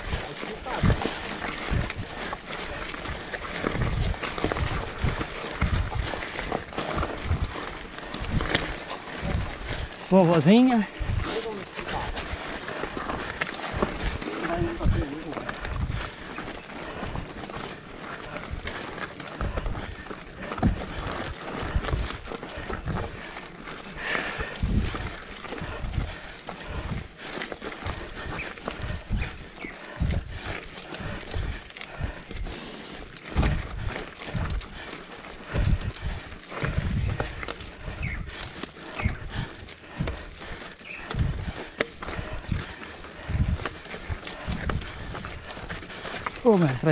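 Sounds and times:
bike rattling over rocks: 0:00.0 - 0:46.9
bike tyres crunching over stones: 0:00.0 - 0:46.9.

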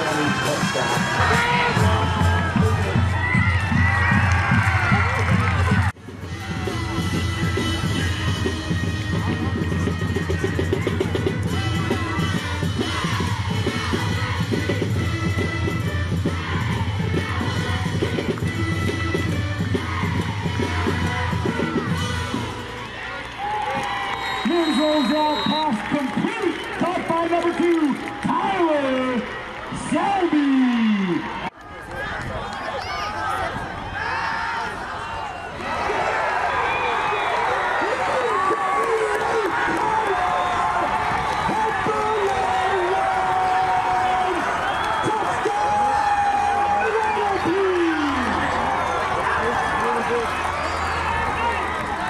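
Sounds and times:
mix of many voices: 0:00.0 - 0:03.6, 0:24.4 - 0:52.0
crowd calling and shouting: 0:00.0 - 0:52.0.

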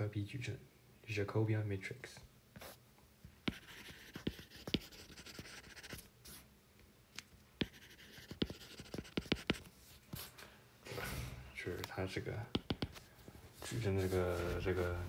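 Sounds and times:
stylus tapping on glass screen: 0:12.5 - 0:13.0
faint scratching: 0:13.0 - 0:15.0.

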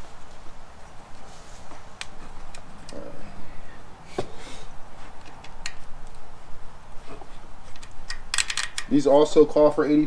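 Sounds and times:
hands handling small hardware: 0:07.0 - 0:09.0.

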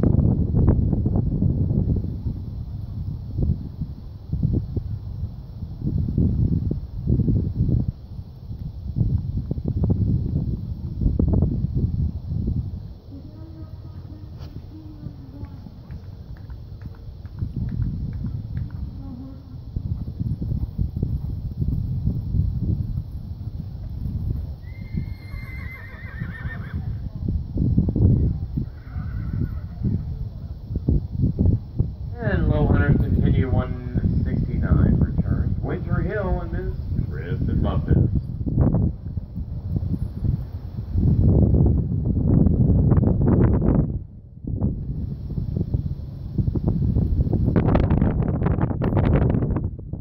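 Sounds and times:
steady low rumble: 0:00.0 - 0:25.2, 0:26.6 - 0:50.0
wind buffeting microphone: 0:00.0 - 0:50.0
horse whinnying: 0:24.6 - 0:27.0, 0:28.6 - 0:30.1.

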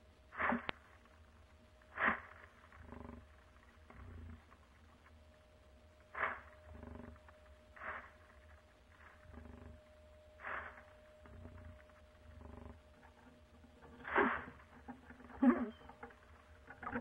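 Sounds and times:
sharp breathy animal calls: 0:00.3 - 0:00.8, 0:01.9 - 0:02.4, 0:13.8 - 0:17.0
low rattling animal grunts: 0:02.0 - 0:03.3, 0:06.2 - 0:07.2, 0:12.3 - 0:17.0.

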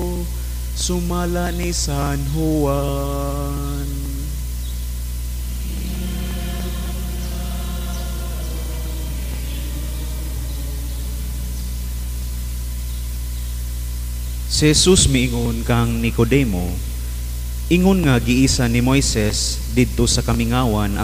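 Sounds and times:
low hum: 0:00.0 - 0:18.7
faint music: 0:05.4 - 0:16.8.

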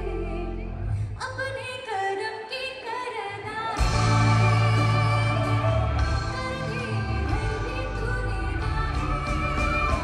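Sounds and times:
woman singing: 0:00.0 - 0:10.0
amplified band playing: 0:03.8 - 0:10.0.

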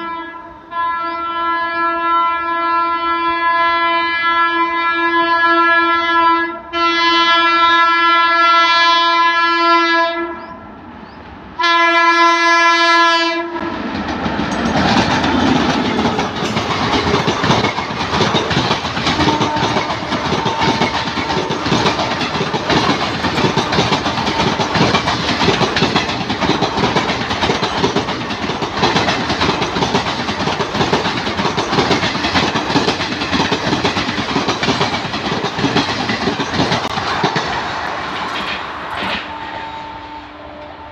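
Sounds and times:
locomotive air horn blast: 0:00.0 - 0:10.7, 0:11.6 - 0:13.7, 0:19.2 - 0:20.8, 0:39.1 - 0:40.9
train wheels clacking over rail joints: 0:13.8 - 0:39.8.

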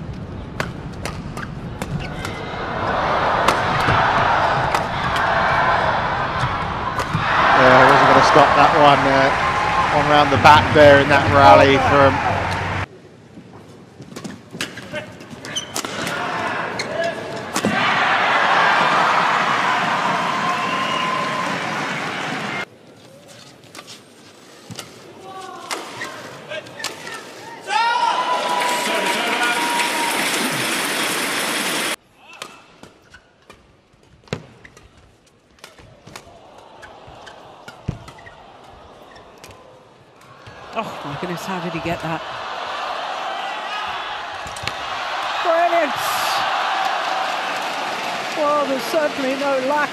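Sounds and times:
crowd cheering: 0:02.2 - 0:12.9, 0:16.0 - 0:22.7, 0:27.6 - 0:32.0, 0:36.1 - 0:49.9.

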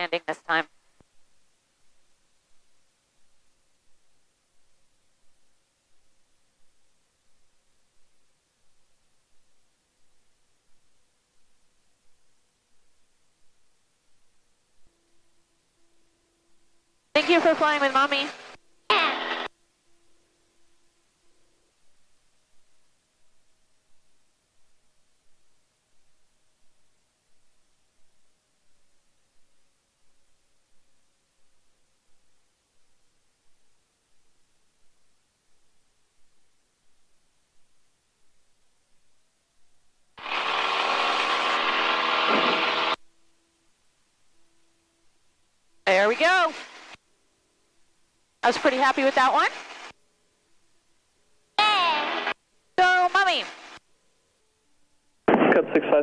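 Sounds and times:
faint steady hum: 0:00.0 - 0:56.0
buzzing tone: 0:14.8 - 0:21.8
person's voice over intercom: 0:55.5 - 0:56.0.

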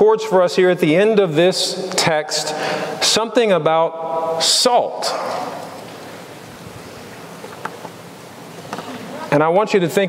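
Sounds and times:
microphone room tone hiss: 0:00.0 - 0:10.0.

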